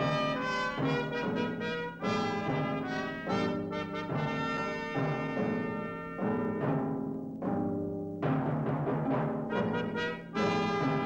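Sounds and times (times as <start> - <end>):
brass sustained chords: 0.0 - 6.7, 9.5 - 11.0.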